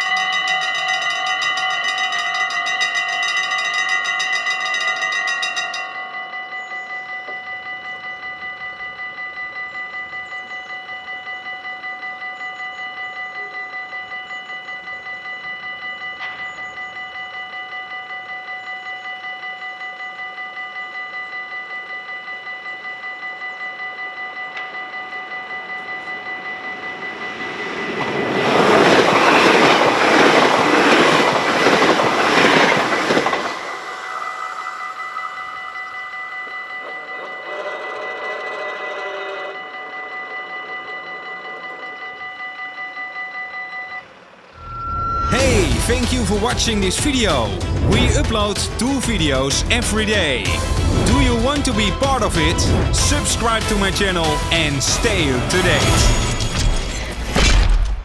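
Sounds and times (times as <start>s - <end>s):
level crossing warning bells: 0.0s - 57.2s
electric train rushing past: 25.4s - 56.7s.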